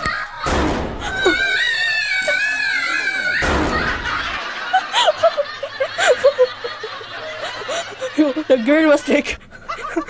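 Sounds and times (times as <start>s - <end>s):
woman laughing high-pitched: 1.0s - 10.0s.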